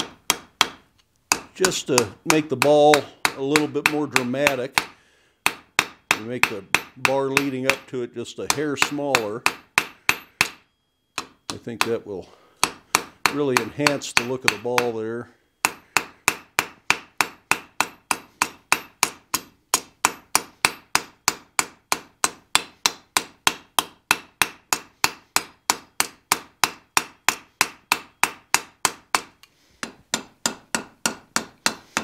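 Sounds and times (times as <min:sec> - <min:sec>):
hammer striking steel on anvil: 0:00.0 - 0:32.0.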